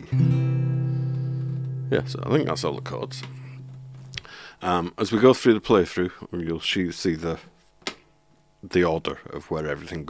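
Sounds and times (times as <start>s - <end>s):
acoustic guitar chord ringing: 0.0s - 4.2s.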